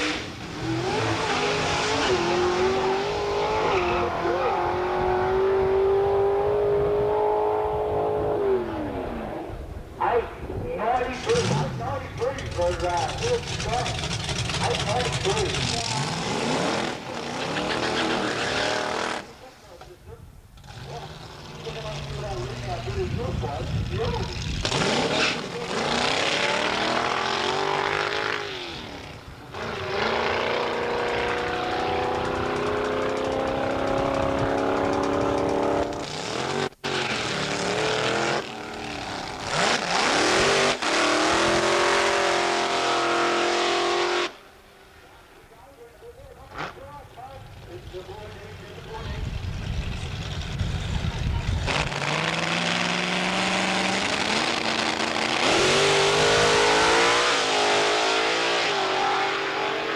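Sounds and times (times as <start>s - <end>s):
drag car engines at high revs: 0.0s - 9.6s, 11.1s - 19.3s, 20.6s - 44.4s, 47.5s - 59.9s.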